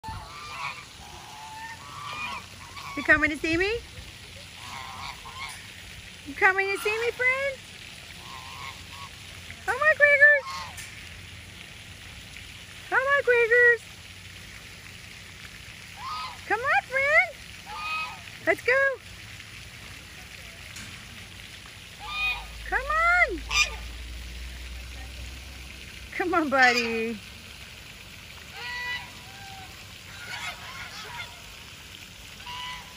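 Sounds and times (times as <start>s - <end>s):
geese honking: 0.0s - 3.8s, 4.6s - 5.7s, 6.4s - 10.9s, 16.0s - 18.3s, 21.8s - 24.0s, 26.2s - 27.2s, 28.5s - 31.7s, 32.3s - 32.9s.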